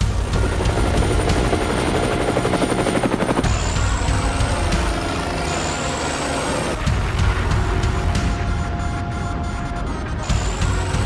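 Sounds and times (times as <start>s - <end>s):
helicopter rotor chopping: 0.0s - 8.9s, 10.2s - 11.0s.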